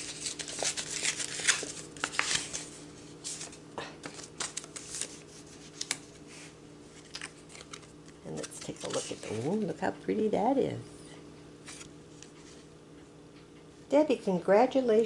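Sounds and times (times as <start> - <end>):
paper envelope crackling and tearing: 0.0 - 6.3, 6.9 - 9.6.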